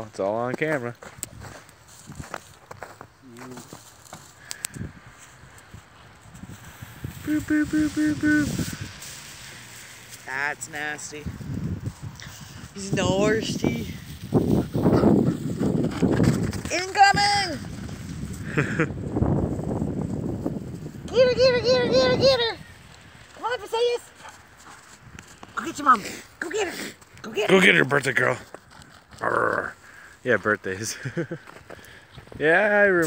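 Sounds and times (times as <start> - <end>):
snow crunching and rustling: 0.0 - 15.2, 16.0 - 31.7
footsteps crunching in snow: 0.4 - 15.4
wind rumbling on microphone: 1.0 - 2.9, 4.5 - 25.5
person humming: 7.2 - 9.0.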